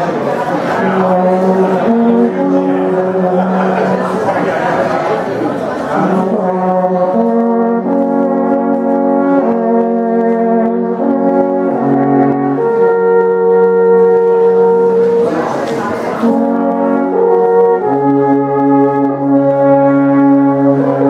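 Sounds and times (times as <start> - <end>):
alphorns playing in harmony: 0.0 - 4.9, 5.9 - 21.0.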